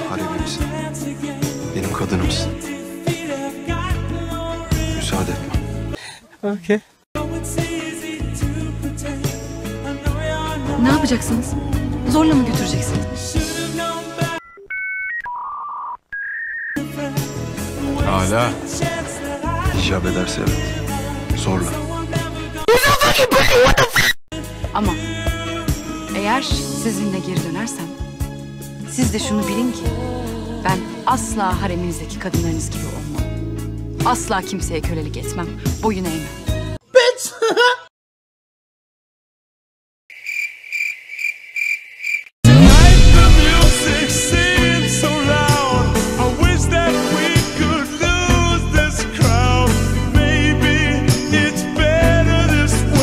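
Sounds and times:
music: 0.0s - 6.0s, 7.2s - 14.4s, 16.8s - 22.8s, 24.3s - 36.8s, 42.5s - 53.0s
electronic beep tones: 14.4s - 16.8s
cricket chirping: 40.1s - 42.3s
loud music: 42.4s - 53.0s.

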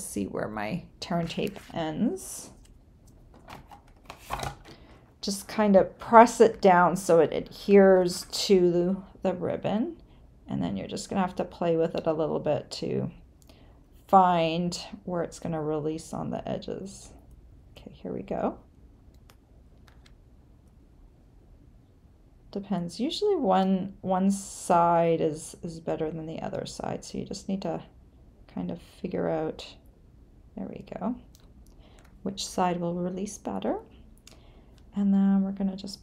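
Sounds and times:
low room hum: 0.0s - 36.0s
tape and paper handling rustles: 1.1s - 4.9s.

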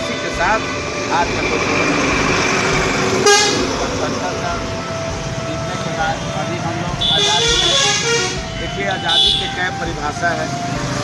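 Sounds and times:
road traffic: 0.0s - 11.0s
vehicle horns: 3.2s - 3.9s, 5.8s - 9.9s.

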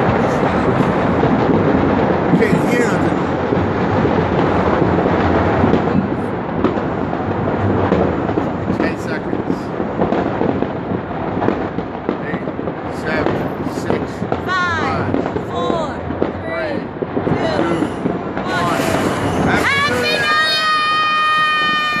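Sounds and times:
fireworks bangs and crackles: 0.0s - 22.0s.

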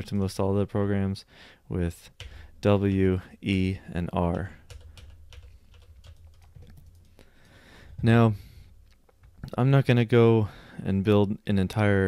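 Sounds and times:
computer keyboard and mouse clicks: 4.3s - 7.6s.

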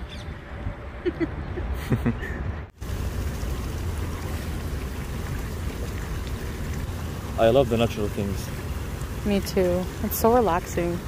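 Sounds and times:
water splashing from jets: 2.8s - 11.0s.

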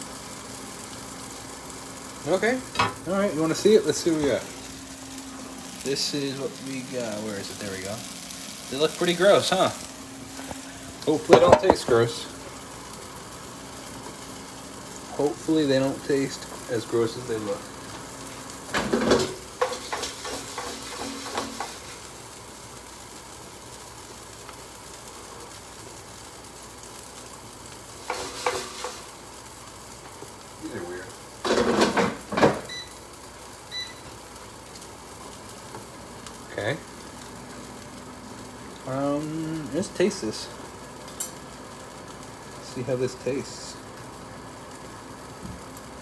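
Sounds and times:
patties sizzling in a pan: 0.0s - 46.0s
utensil and pan clattering: 11.2s - 12.0s, 18.7s - 22.0s, 28.0s - 29.1s, 31.4s - 32.6s.

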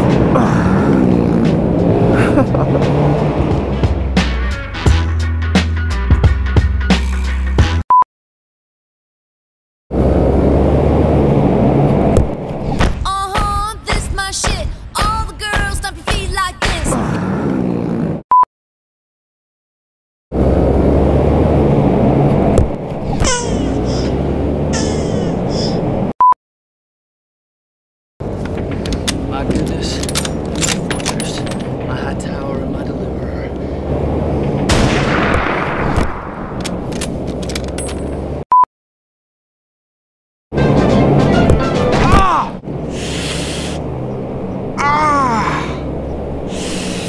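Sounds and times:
sharp cracks: 34.4s - 38.0s.

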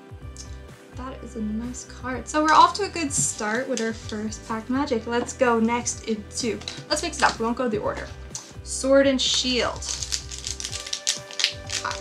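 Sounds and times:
soft background music: 0.0s - 12.0s
foil wrapper crinkling: 9.7s - 12.0s.

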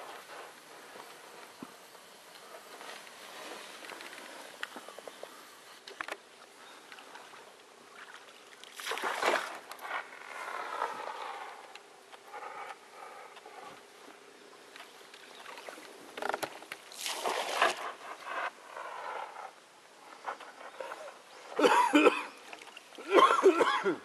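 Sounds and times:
water lapping against boat: 17.0s - 18.0s.

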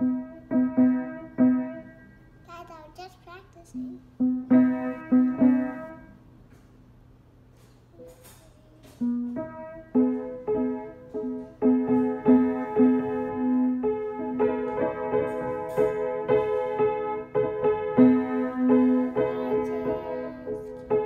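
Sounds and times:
child playing piano: 0.0s - 3.0s, 3.7s - 6.2s, 8.0s - 21.0s.

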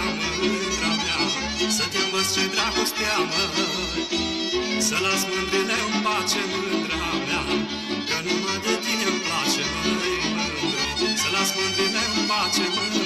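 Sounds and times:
folk dance music: 0.0s - 13.0s.

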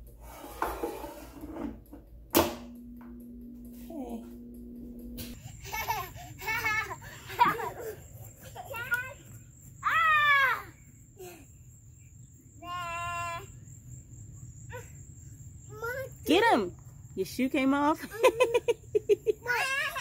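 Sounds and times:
children shouting and squealing: 5.5s - 11.5s, 12.6s - 13.6s, 19.3s - 20.0s.

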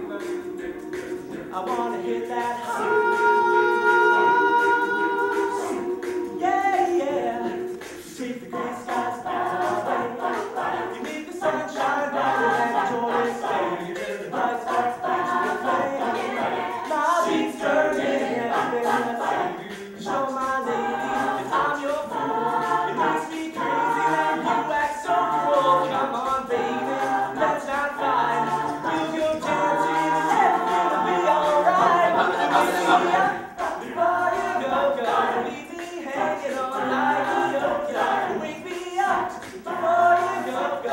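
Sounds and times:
a cappella group singing: 0.0s - 40.9s.

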